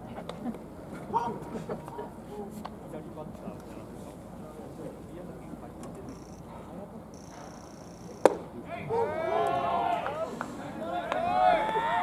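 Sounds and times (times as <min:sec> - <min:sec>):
voices calling out: 0:05.9 - 0:12.0.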